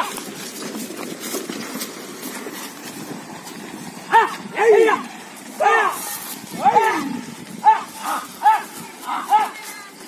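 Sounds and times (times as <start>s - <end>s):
men shouting high-pitched calls: 4.1s - 10.0s.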